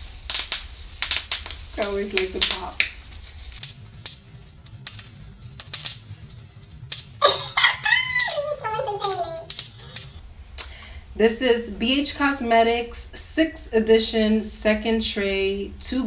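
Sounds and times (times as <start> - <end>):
bubble wrap popping: 0.0 - 10.2.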